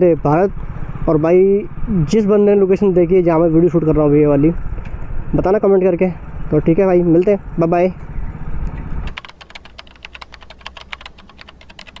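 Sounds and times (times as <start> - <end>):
motorcycle wind and road rumble: 0.0 - 9.1
keyboard typing clicks: 9.1 - 12.0.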